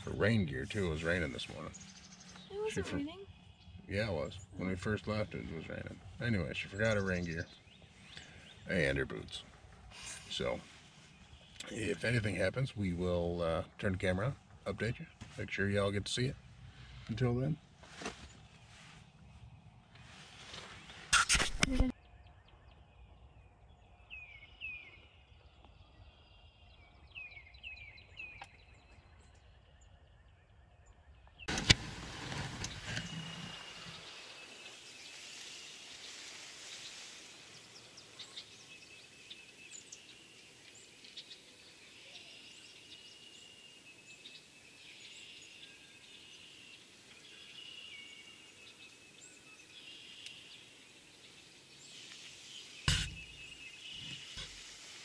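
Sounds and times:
small birds chirping: 0:00.0 - 0:55.0
loud thump: 0:52.9 - 0:53.3.

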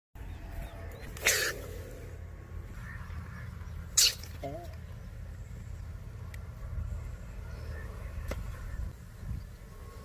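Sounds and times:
snake hissing: 0:01.2 - 0:02.3, 0:03.9 - 0:04.4.

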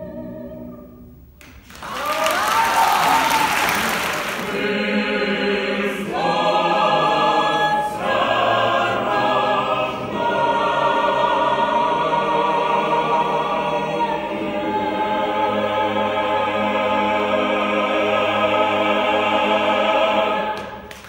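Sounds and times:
choir singing a carol: 0:00.0 - 0:01.1, 0:03.0 - 0:21.0
audience applause: 0:01.4 - 0:04.8.

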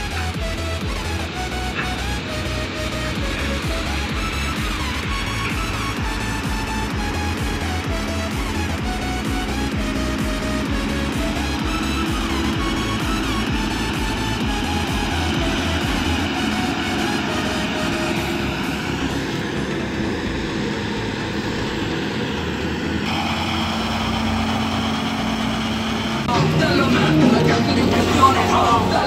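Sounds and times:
background music: 0:00.0 - 0:29.0
tractor engines running: 0:00.0 - 0:29.0.

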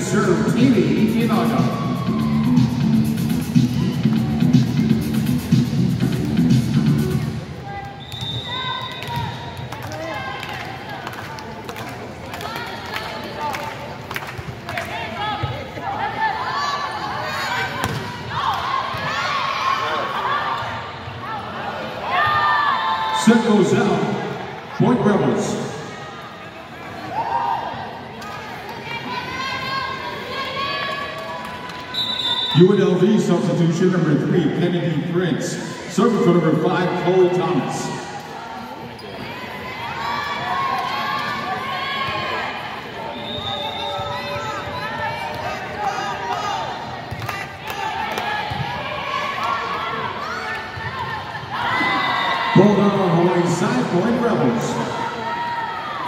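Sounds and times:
arena music: 0:00.0 - 0:07.6
crowd voices: 0:00.0 - 0:56.0.

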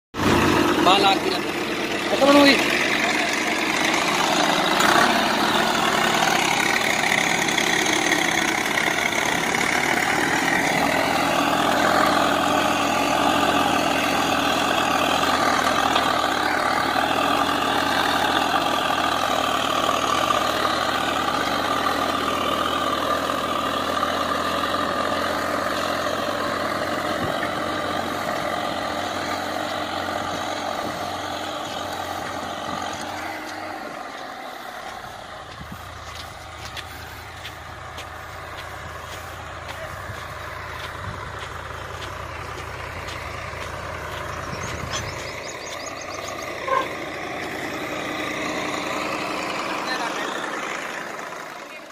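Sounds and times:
tractor diesel engine under load: 0:00.1 - 0:51.9.

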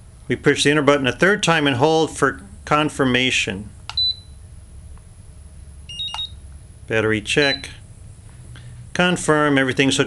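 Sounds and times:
short high beeps: 0:04.0 - 0:04.4, 0:05.9 - 0:06.4, 0:07.4 - 0:07.8.

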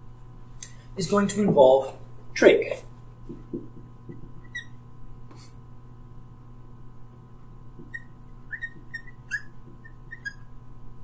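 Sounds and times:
marker squeaking on whiteboard: 0:03.3 - 0:05.5, 0:07.8 - 0:10.6.

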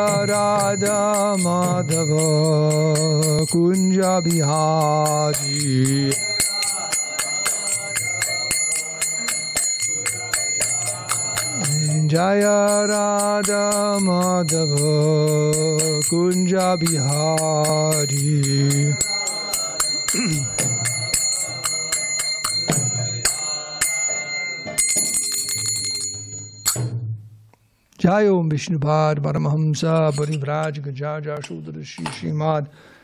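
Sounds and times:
hand cymbals struck in a beat: 0:00.0 - 0:27.2.

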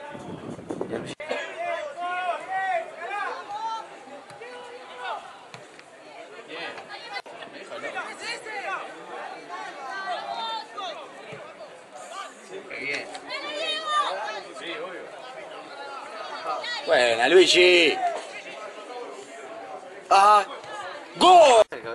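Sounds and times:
spectators chattering and calling: 0:00.0 - 0:21.9.

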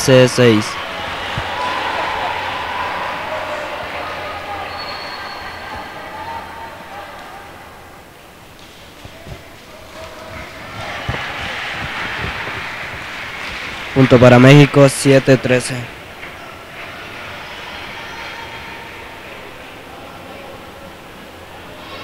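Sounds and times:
murmur of voices: 0:00.0 - 0:22.0.

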